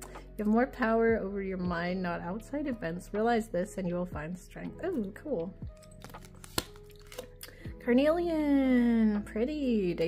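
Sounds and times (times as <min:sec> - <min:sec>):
faint background music: 0:00.0 - 0:10.0
cards clicking and tapping: 0:05.8 - 0:07.6.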